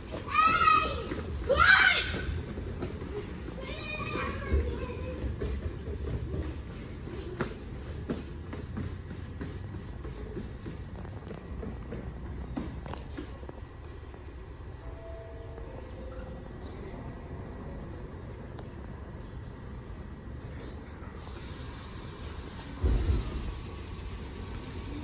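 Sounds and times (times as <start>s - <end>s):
subway train low hum: 0.0s - 25.0s.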